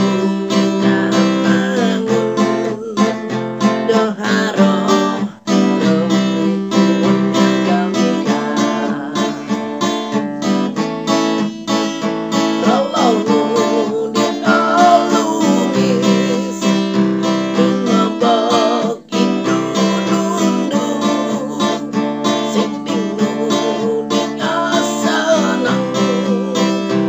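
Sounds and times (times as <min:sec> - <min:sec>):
man singing: 0:00.0 - 0:09.9, 0:12.4 - 0:27.0
acoustic guitar strumming: 0:00.0 - 0:27.0.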